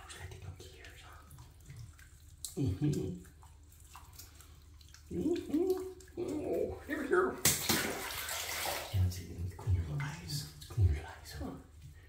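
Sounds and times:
water splashing in a bathtub: 0:00.0 - 0:12.0
person making wordless sounds: 0:02.4 - 0:03.4, 0:05.0 - 0:07.8.

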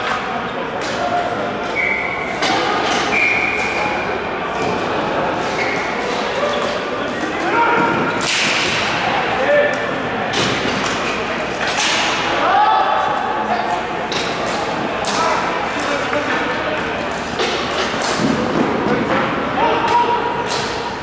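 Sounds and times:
players' voices: 0:00.0 - 0:21.0.

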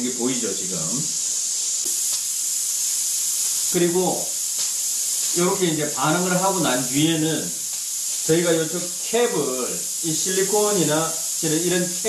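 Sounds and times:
steam hissing from vent: 0:00.0 - 0:12.0.

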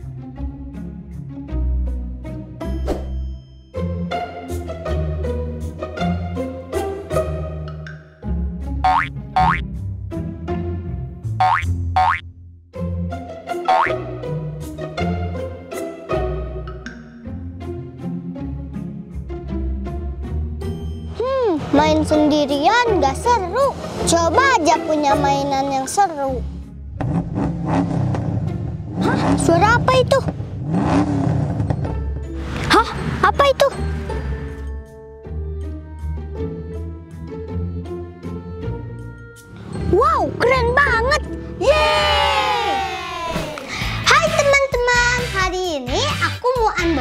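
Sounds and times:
playful children's music: 0:00.0 - 0:27.0, 0:31.6 - 0:47.0
rising boing sound effects: 0:08.8 - 0:09.6, 0:11.4 - 0:12.2, 0:13.7 - 0:14.0
vehicle engine rumbling: 0:26.6 - 0:34.8.

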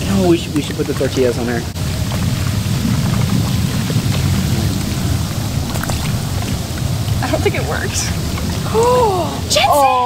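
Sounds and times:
hot tub jets bubbling water: 0:00.0 - 0:10.0.

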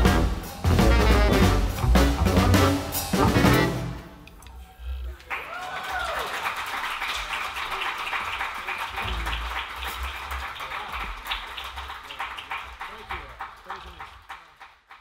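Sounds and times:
audience applauding: 0:05.1 - 0:15.0
voices among clapping: 0:05.1 - 0:15.0.

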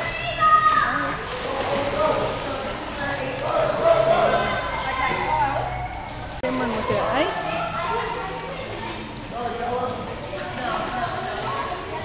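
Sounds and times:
water splashing: 0:00.0 - 0:12.0.

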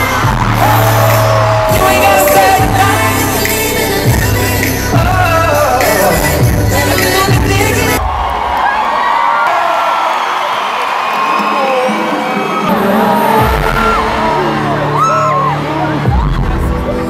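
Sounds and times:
crowd screaming and whooping: 0:00.0 - 0:03.6, 0:07.9 - 0:17.0
bass-heavy live band music: 0:00.0 - 0:08.0, 0:12.8 - 0:17.0.

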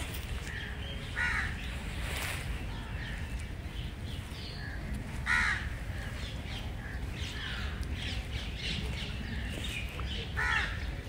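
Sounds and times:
birds calling: 0:00.0 - 0:11.0.

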